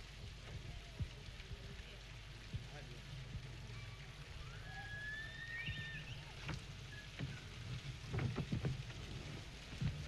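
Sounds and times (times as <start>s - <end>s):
thin high whistle-like tone: 3.8s - 7.1s.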